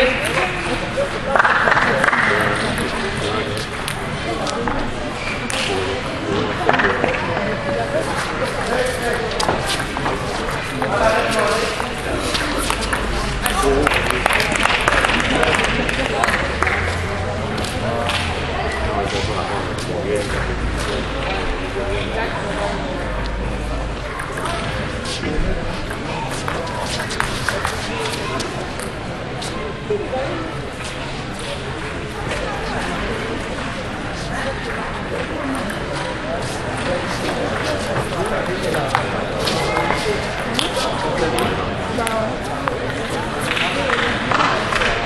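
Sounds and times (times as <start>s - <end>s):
echoing background voices: 0.0s - 45.0s.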